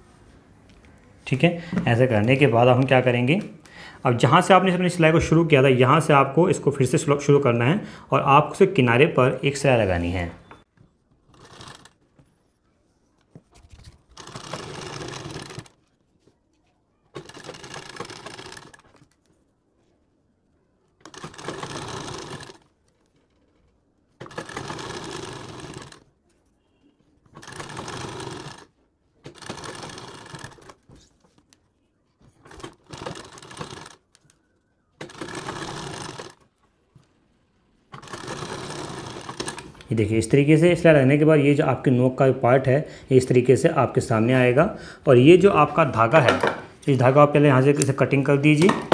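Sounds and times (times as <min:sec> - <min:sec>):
sewing machine stitching: 0:11.2 - 0:12.2, 0:14.0 - 0:15.9, 0:17.1 - 0:19.1, 0:21.0 - 0:31.1, 0:32.3 - 0:34.3, 0:35.0 - 0:36.5, 0:37.9 - 0:39.9.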